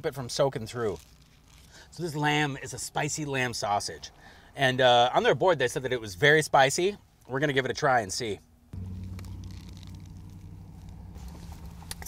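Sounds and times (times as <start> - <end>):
car engine idling: 8.8 - 12.0.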